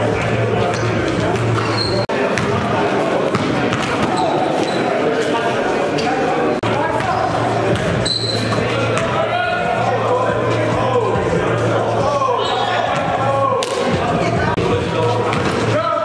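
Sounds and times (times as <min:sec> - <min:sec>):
players' voices: 0:00.0 - 0:16.0
sneaker squeaks: 0:00.7 - 0:02.6, 0:03.3 - 0:05.3, 0:07.0 - 0:09.2, 0:12.3 - 0:13.1
basketball bouncing on court: 0:02.3 - 0:04.4, 0:06.9 - 0:09.2.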